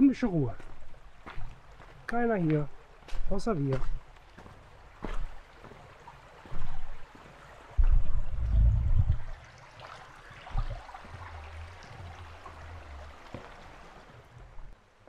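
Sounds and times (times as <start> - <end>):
stream running over rocks: 0.0 - 15.0
low rumbling bursts on microphone: 7.8 - 9.5.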